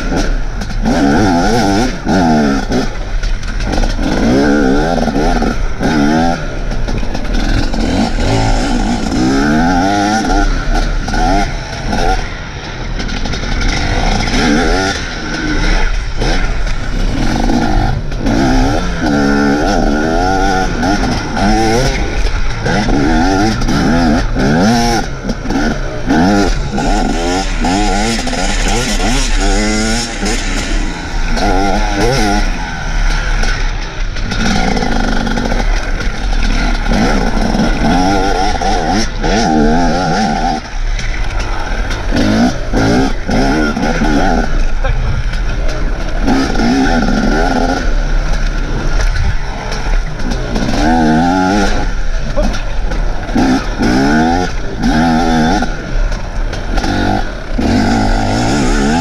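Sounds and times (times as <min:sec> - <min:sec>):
dirt bike engine revving: 0:00.0 - 0:59.0.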